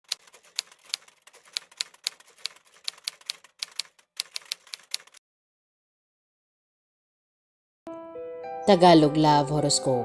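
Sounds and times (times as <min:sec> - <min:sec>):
keyboard keystroke clicks: 0:00.1 - 0:05.2.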